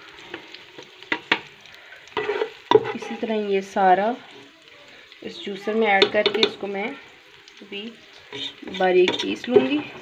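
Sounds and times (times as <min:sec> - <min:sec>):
hot oil sizzling in a pan: 0:00.0 - 0:10.0
spatula scraping and knocking pan: 0:02.1 - 0:03.2, 0:05.9 - 0:06.6, 0:08.3 - 0:10.0.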